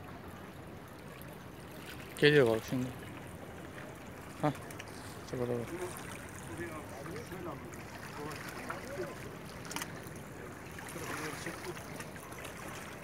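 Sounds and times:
water lapping on rocky shore: 0:00.4 - 0:13.0
faint voices: 0:03.7 - 0:13.0.

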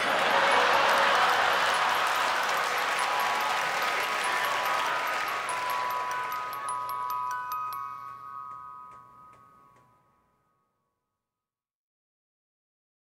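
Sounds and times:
audience applause: 0:00.0 - 0:08.2
held musical tones: 0:00.0 - 0:10.5.

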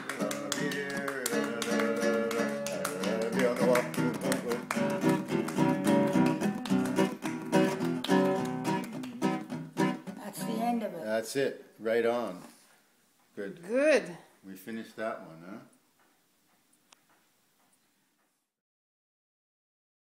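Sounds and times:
people singing along: 0:00.0 - 0:03.9
acoustic guitar strumming: 0:00.0 - 0:10.9.

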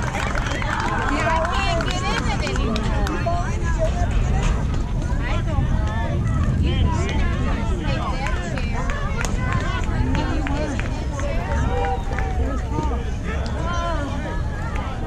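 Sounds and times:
people calling out and chattering: 0:00.0 - 0:15.0
low rumble: 0:01.4 - 0:15.0.

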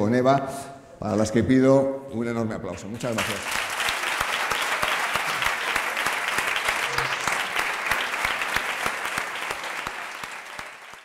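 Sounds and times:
audience applause: 0:03.1 - 0:11.0.

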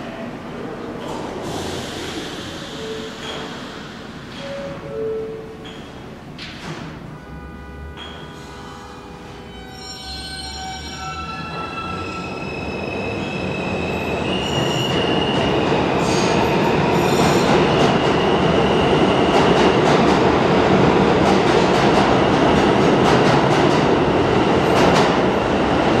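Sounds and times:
subway train propulsion whine: 0:00.0 - 0:26.0
rail-joint clicks: 0:03.2 - 0:03.7.

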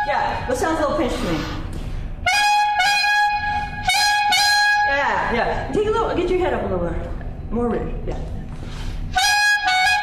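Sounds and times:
clarinet tongued notes: 0:02.2 - 0:05.0, 0:09.2 - 0:10.0.

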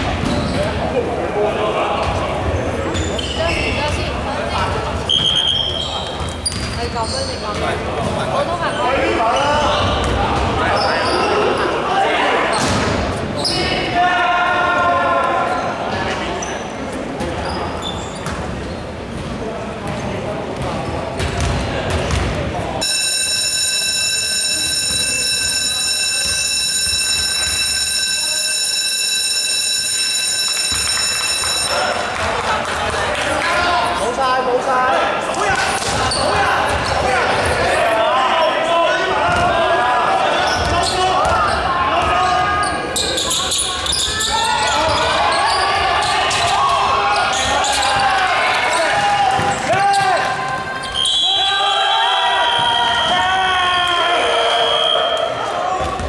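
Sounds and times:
players' voices: 0:00.0 - 0:56.0
scoreboard buzzer long tone: 0:22.8 - 0:31.8.

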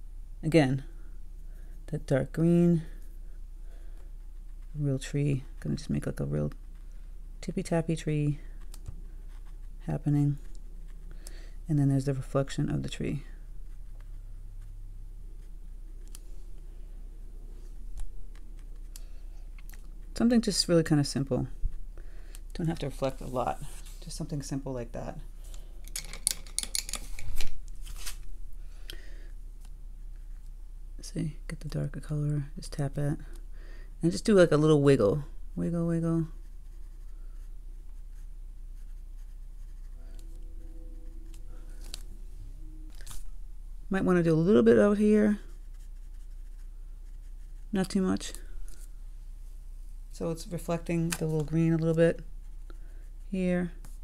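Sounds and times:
steady low hum: 0:00.0 - 0:54.0
brush dabbing on paper: 0:36.2 - 0:42.0, 0:44.1 - 0:48.9
faint held tone: 0:39.8 - 0:43.9.

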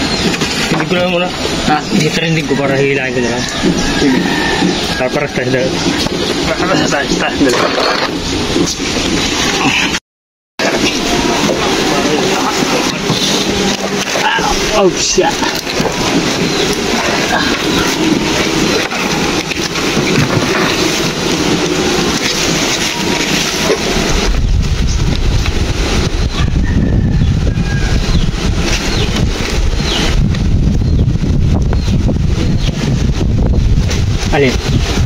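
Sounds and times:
wind buffeting microphone: 0:00.0 - 0:10.0, 0:10.6 - 0:35.0.

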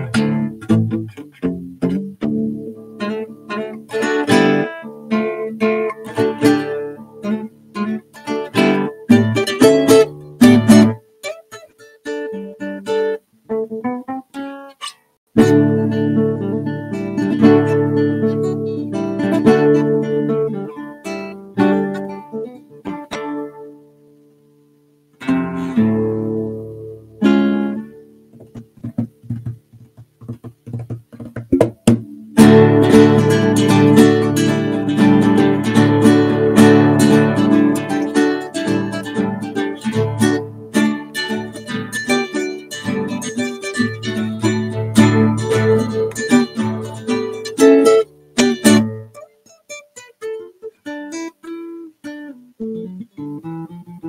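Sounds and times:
fingerpicked classical guitar: 0:00.0 - 0:54.0.

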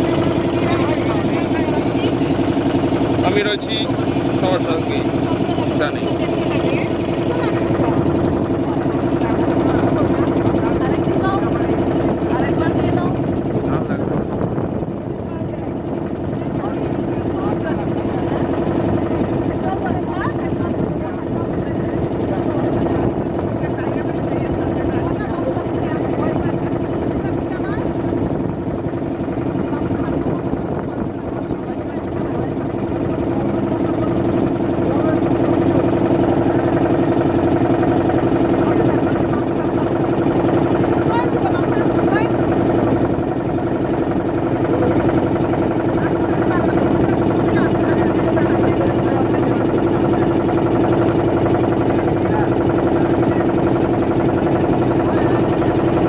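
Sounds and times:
people's voices: 0:00.0 - 0:14.2, 0:15.2 - 0:28.4, 0:29.2 - 0:56.0
motor boat engine humming: 0:00.0 - 0:56.0.

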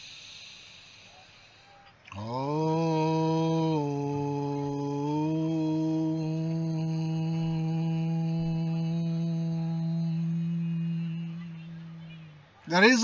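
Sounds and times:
deep breath: 0:00.0 - 0:12.7
man chanting a low tone: 0:02.1 - 0:13.0.

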